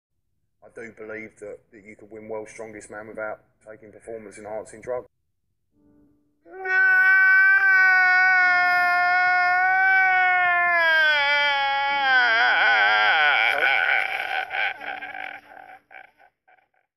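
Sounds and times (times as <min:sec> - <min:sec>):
man wailing and sobbing: 0:06.5 - 0:16.6.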